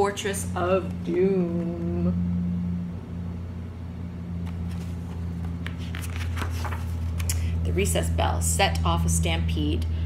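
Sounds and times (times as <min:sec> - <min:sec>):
low hum: 0:00.0 - 0:10.0
paper page rustling: 0:04.4 - 0:07.3.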